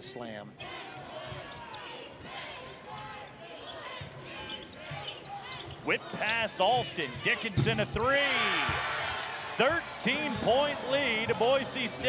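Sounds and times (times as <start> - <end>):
shoe squeaks: 0.6 - 7.7
crowd voices: 0.6 - 12.0.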